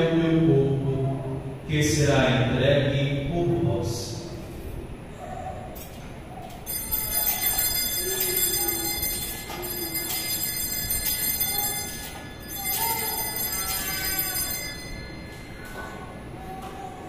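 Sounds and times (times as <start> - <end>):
altar bells ringing: 6.6 - 16.6.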